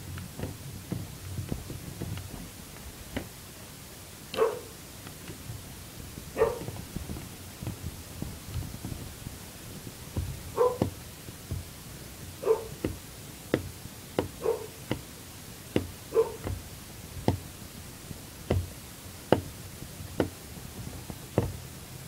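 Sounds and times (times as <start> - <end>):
knocks and clicks on a desk: 0.4 - 2.4, 3.1 - 3.3, 6.4 - 7.8, 10.2 - 11.7, 12.8 - 15.1, 15.7 - 16.6, 17.2 - 17.5, 18.5 - 18.7, 19.3 - 19.5, 20.2 - 20.4, 21.3 - 21.6.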